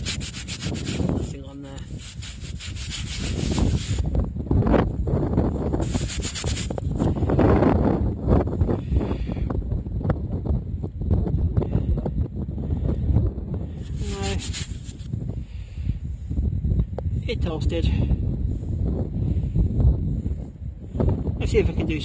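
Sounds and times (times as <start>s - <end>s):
scraping and handling: 0.0s - 4.0s, 5.8s - 6.9s, 13.8s - 15.1s
metal disc rubbed on fabric: 0.0s - 4.1s, 5.8s - 6.9s, 13.8s - 15.1s.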